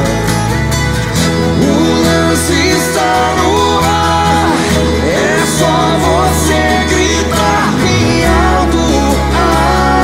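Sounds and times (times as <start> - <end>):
acoustic pop-rock band: 0.0 - 10.0
person singing: 1.3 - 10.0.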